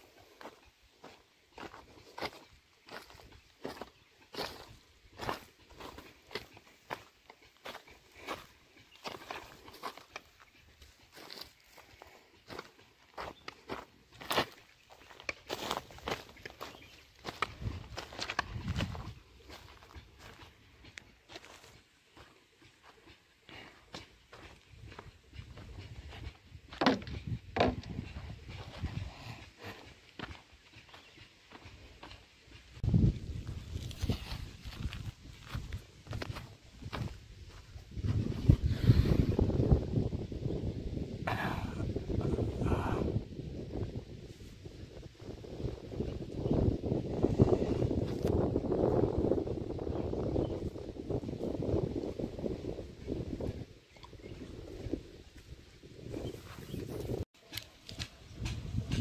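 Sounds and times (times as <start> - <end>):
footsteps crunching on dry soil: 0.0 - 40.6, 43.8 - 59.0.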